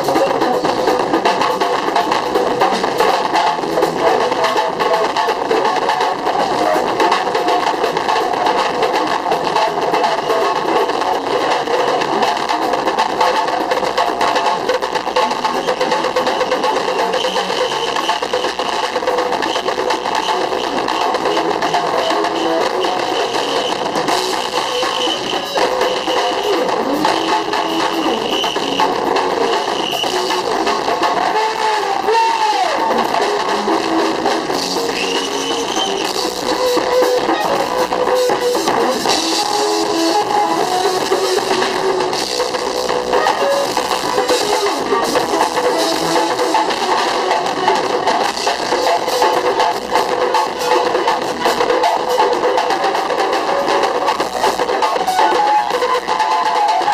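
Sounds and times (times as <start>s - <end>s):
live band music with drums: 0.0s - 56.9s.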